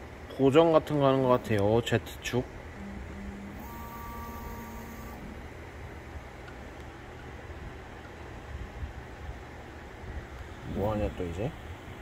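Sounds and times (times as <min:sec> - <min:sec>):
low hum of motors and fans: 0:00.0 - 0:12.0
motor whine: 0:02.6 - 0:06.0.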